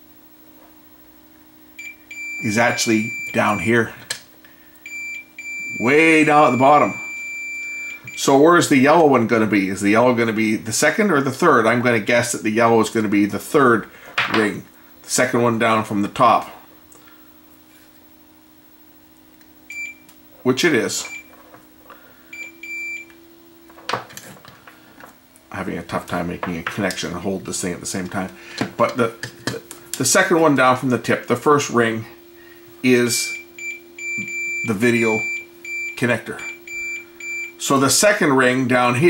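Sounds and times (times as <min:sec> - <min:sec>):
multimeter continuity beep: 0:01.8 - 0:03.9, 0:04.8 - 0:09.2, 0:19.7 - 0:20.1, 0:21.0 - 0:21.3, 0:22.3 - 0:23.2, 0:33.2 - 0:37.7.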